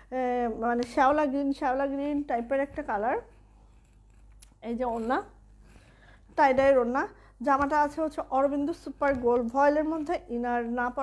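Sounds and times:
woman's voice: 0.0 - 3.4, 4.6 - 5.4, 6.3 - 11.0.

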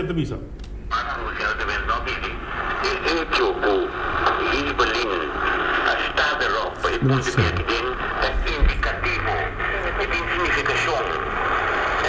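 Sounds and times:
person talking over telephone: 0.9 - 11.3.

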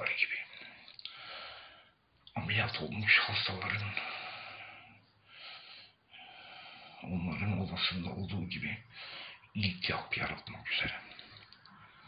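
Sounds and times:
man breathing: 0.4 - 2.1, 4.0 - 7.0, 8.8 - 9.5.

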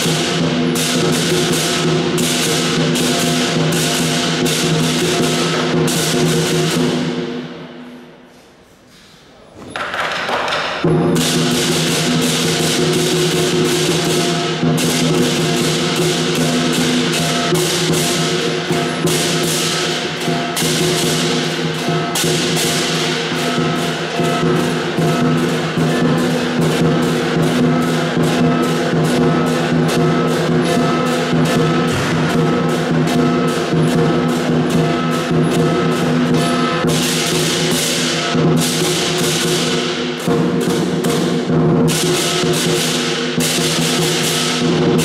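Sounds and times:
big drum beating: 0.0 - 7.8, 10.8 - 45.0
crashing cymbals: 0.0 - 8.8, 10.8 - 45.0
ringing gong: 10.9 - 45.0.

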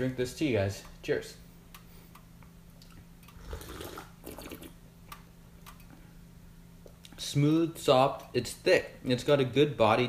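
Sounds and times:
person slurping tea: 3.4 - 4.8.

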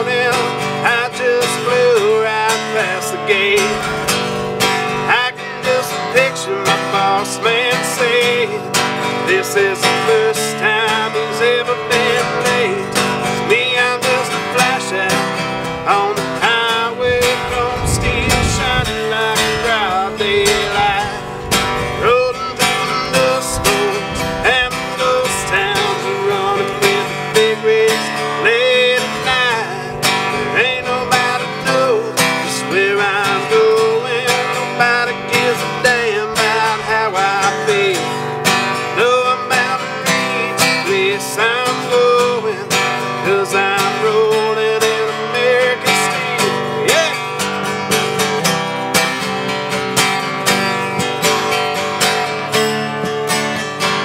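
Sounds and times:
acoustic guitar strumming: 0.0 - 54.0
sliding melody line: 1.0 - 41.8.

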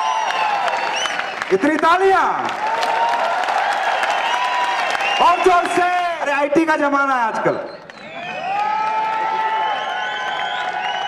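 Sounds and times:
audience applauding: 0.0 - 6.4, 7.7 - 11.0.

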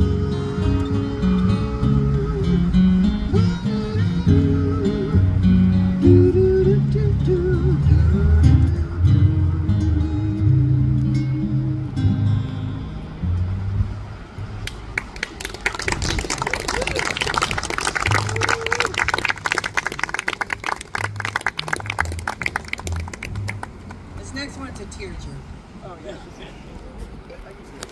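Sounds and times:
upright bass and acoustic guitar: 0.0 - 14.6, 15.9 - 25.6
audience applauding: 14.6 - 24.0.

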